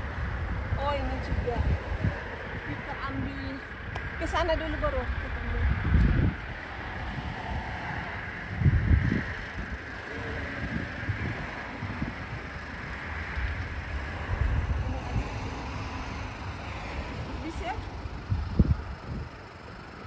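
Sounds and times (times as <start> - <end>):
cars passing on road: 0.0 - 20.0
wind buffeting microphone: 0.0 - 20.0.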